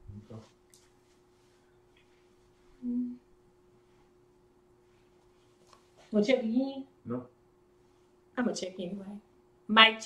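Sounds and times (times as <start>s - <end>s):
faint steady hum: 0.0s - 10.0s
person humming mm: 2.8s - 3.3s.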